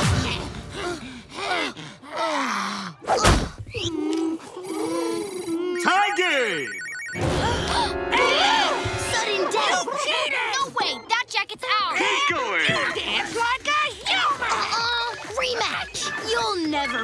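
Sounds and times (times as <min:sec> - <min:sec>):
cartoon music: 0:05.7 - 0:10.2
electronic ringing sound effect: 0:05.8 - 0:09.5.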